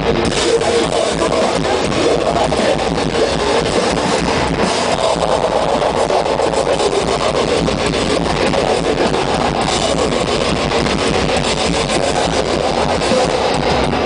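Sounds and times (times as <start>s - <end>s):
live metal band: 0.0s - 14.0s.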